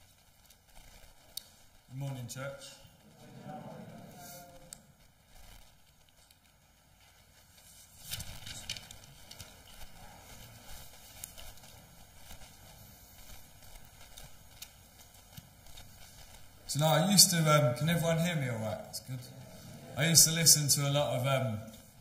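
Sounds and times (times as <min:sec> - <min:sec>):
papers rustling: 0:07.6 - 0:16.5.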